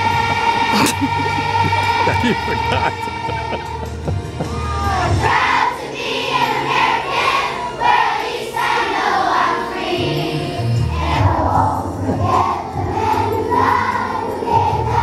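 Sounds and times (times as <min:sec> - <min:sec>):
children's choir singing: 0:00.0 - 0:15.0
low musical accompaniment: 0:00.0 - 0:15.0.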